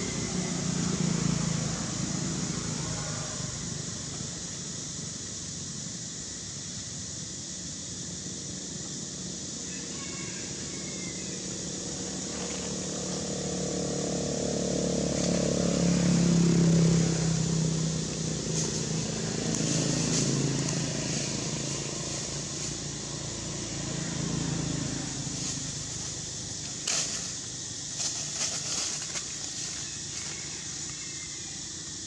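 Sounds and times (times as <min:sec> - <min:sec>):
vehicle engine passing: 0:00.0 - 0:04.9, 0:11.4 - 0:31.0.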